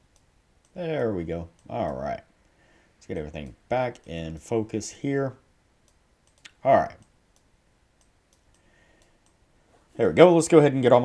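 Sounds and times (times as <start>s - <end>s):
computer mouse clicks: 0.0s - 2.2s, 5.8s - 9.4s.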